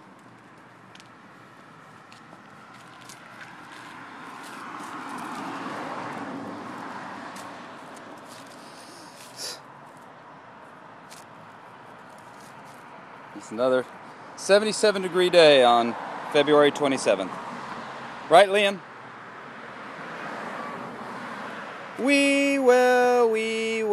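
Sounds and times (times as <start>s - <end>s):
toddler footsteps scuffing: 0.0s - 10.1s, 11.0s - 12.9s
car passing by: 0.9s - 9.5s, 15.1s - 18.4s, 19.0s - 22.0s.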